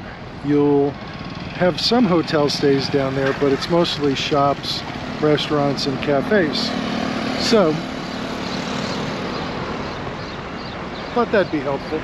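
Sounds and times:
passing traffic rumble and hiss: 0.0s - 12.0s.

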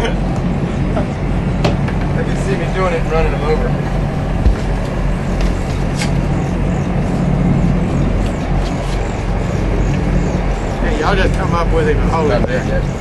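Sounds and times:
boat engine droning: 0.0s - 13.0s
wind and water noise: 0.0s - 13.0s.

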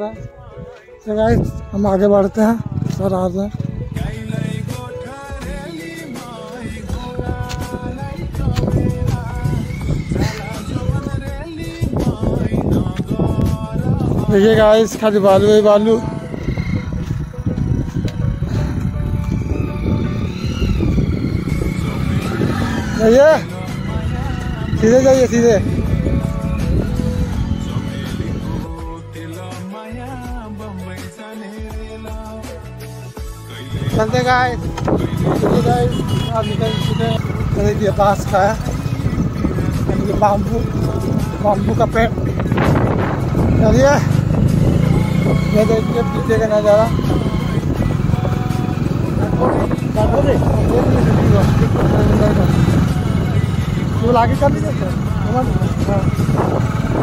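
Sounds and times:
small motorcycle engine rumbling: 1.9s - 12.9s, 13.8s - 28.8s, 33.5s - 57.0s.

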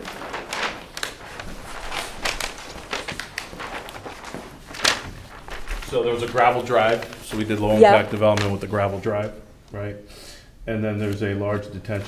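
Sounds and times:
paper sheets rustling: 0.0s - 9.0s.

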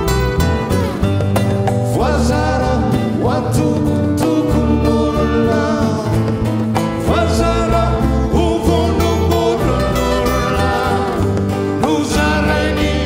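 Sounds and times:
guitar accompaniment: 0.0s - 13.0s
low bass line: 0.0s - 13.0s
voices singing: 1.8s - 13.0s.

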